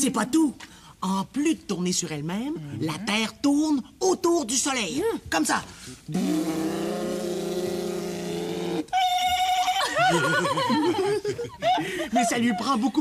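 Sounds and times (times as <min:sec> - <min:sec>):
sliding vocal sounds: 0:06.1 - 0:08.9.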